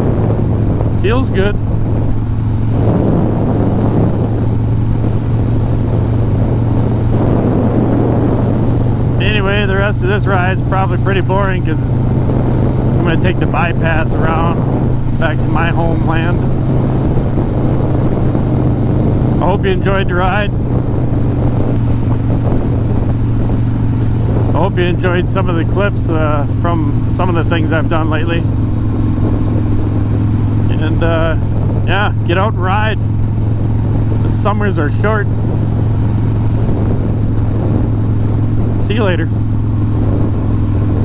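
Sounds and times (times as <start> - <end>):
motorcycle engine cruising: 0.0 - 41.0
wind and road rush: 0.0 - 41.0.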